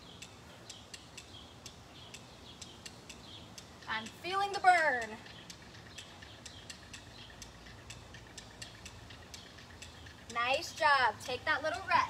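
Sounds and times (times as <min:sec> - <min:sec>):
faint light ticks: 0:00.0 - 0:10.7
low background hum: 0:00.0 - 0:12.0.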